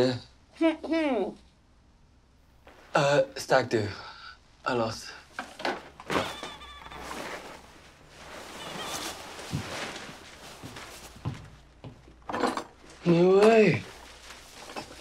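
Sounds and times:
vinyl plastic rustling and squeaking: 5.4s - 11.7s, 12.8s - 15.0s.

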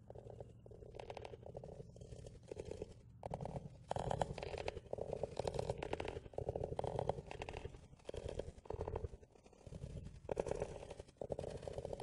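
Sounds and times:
fingernails scratching on wood: 0.1s - 12.0s.

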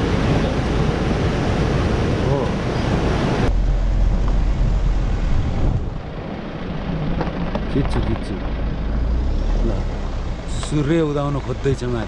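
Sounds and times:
fast river rushing: 0.0s - 3.5s
low vehicle rumble: 0.0s - 12.0s.

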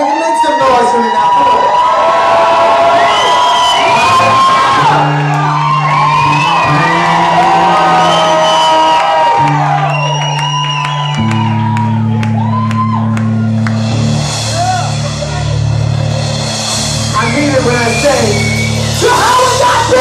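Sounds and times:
crowd cheering and whooping: 0.0s - 16.5s, 17.2s - 20.0s.

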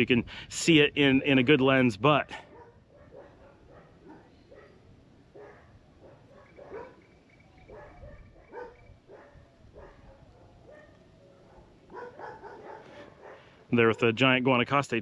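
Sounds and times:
dogs barking faintly: 2.2s - 14.2s.

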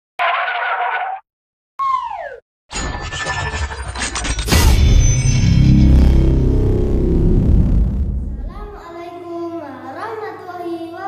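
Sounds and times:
dense rising effect: 4.4s - 8.9s
intro music: 4.5s - 8.8s
noisy burst: 4.5s - 8.9s
tone falling in pitch: 5.1s - 8.8s.

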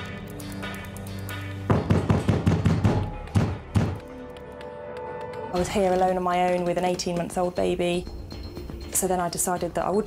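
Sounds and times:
tense background music: 0.0s - 10.0s
hammering on a door: 1.7s - 4.0s.

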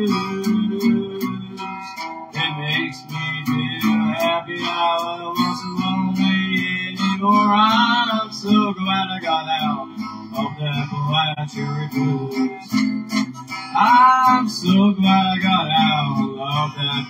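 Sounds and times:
acoustic guitar strummed blues: 0.0s - 17.0s.

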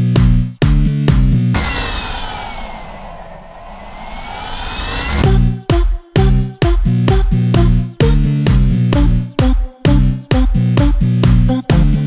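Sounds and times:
filtered noise sweep: 1.5s - 5.7s
electronic dance beat: 5.2s - 12.0s.

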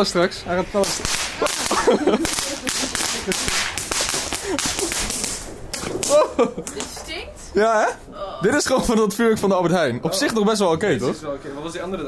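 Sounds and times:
firework hissing crackle: 0.0s - 6.1s.

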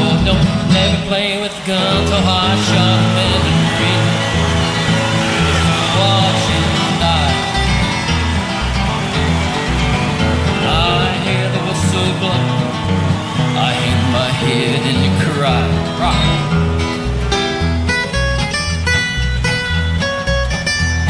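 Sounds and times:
bluegrass band playing: 0.0s - 21.0s
plucked guitar: 0.0s - 21.0s
bouncing bass line: 1.9s - 21.0s.

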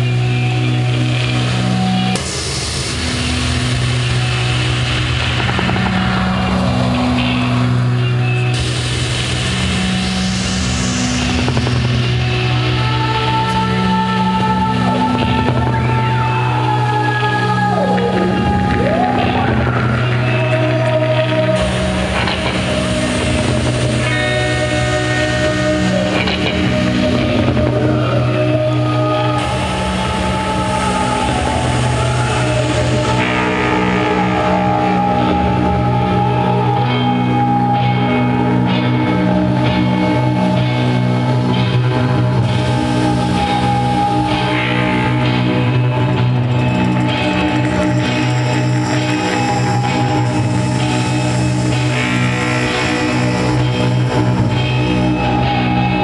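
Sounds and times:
distorted guitar noise: 0.0s - 56.0s
rock band playing live: 0.0s - 56.0s.

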